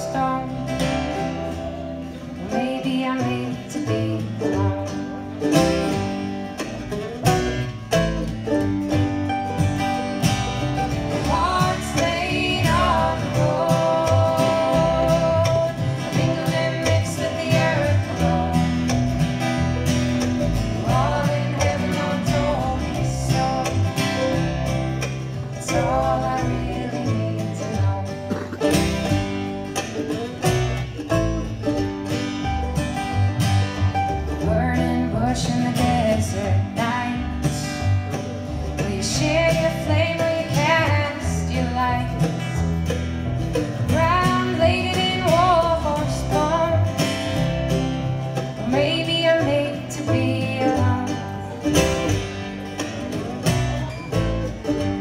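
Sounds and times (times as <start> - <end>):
acoustic guitar: 0.0 - 55.0
mandolin: 0.0 - 55.0
upright bass: 0.0 - 55.0
voices singing together: 11.1 - 19.2, 20.7 - 24.4.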